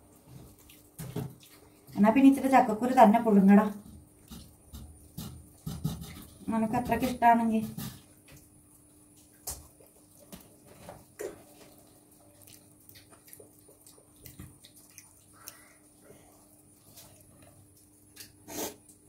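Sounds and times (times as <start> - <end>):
low steady hum: 0.0 - 19.0.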